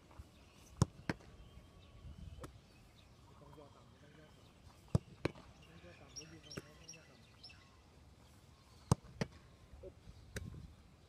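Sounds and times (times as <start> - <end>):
birds chirping faintly: 0.0 - 10.7.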